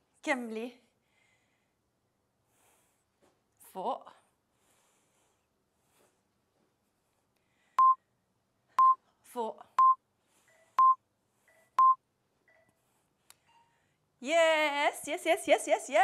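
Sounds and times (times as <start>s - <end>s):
short high timer beeps: 11.8s - 12.0s.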